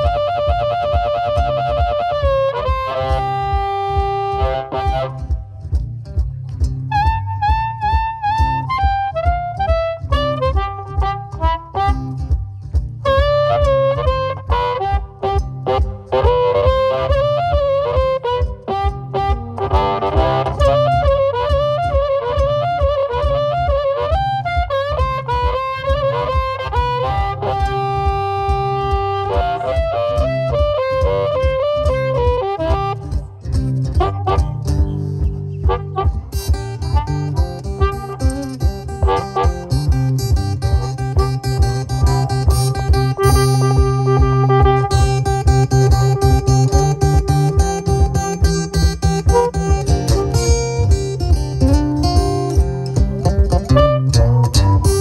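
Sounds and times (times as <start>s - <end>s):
harmonica held notes: 0.0s - 5.4s, 13.0s - 33.3s, 34.0s - 55.0s
acoustic guitar blues rhythm: 0.0s - 55.0s
steady low beat: 0.0s - 55.0s.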